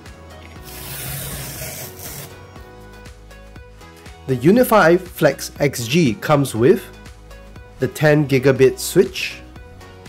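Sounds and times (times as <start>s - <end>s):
background music: 0.0s - 10.0s
packing tape ripping off box: 0.6s - 2.4s.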